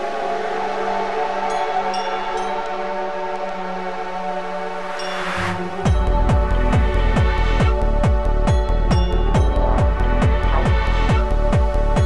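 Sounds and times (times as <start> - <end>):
synthesizer pad chord: 0.0 - 12.0
held bass note: 5.5 - 12.0.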